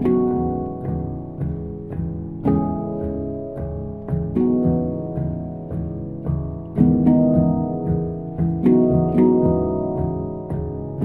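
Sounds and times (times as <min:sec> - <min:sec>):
handpans playing in harmony: 0:00.0 - 0:11.0.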